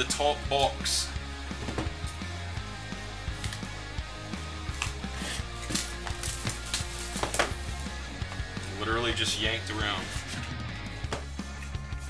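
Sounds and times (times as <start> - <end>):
quiet background music: 0.0 - 12.0
plastic wrap crinkling and tearing: 4.8 - 7.5.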